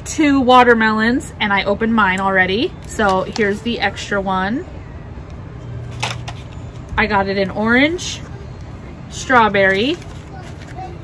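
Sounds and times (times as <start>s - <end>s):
handling plastic packaging: 8.2s - 11.0s.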